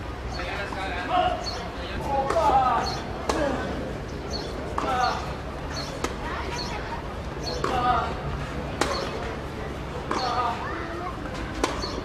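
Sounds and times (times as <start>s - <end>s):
voices: 0.1s - 12.0s
tennis ball hit by racket: 8.8s - 9.2s, 10.1s - 10.5s, 11.5s - 12.0s.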